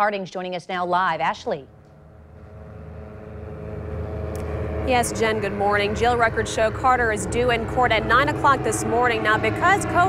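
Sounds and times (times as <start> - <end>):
faint constant tone: 1.2 - 10.0
traffic hum: 1.6 - 10.0
woman speaking: 4.9 - 10.0.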